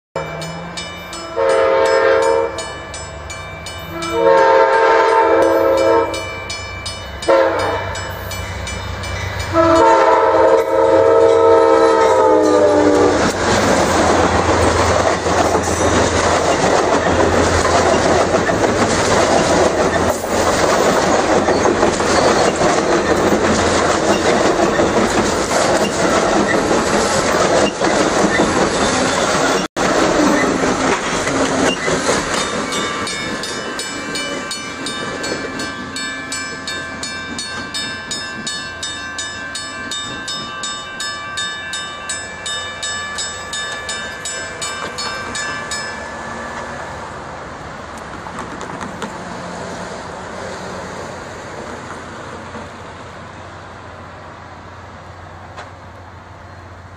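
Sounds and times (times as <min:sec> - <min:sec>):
train wheels rolling on rails: 0:00.2 - 0:56.9
train horn blasts: 0:01.3 - 0:02.7, 0:03.9 - 0:06.3, 0:07.2 - 0:08.2, 0:09.5 - 0:13.2.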